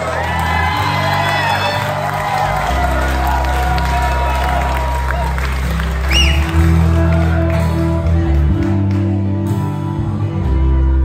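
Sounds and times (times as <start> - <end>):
bass guitar: 0.0 - 11.0
electric guitar: 0.0 - 11.0.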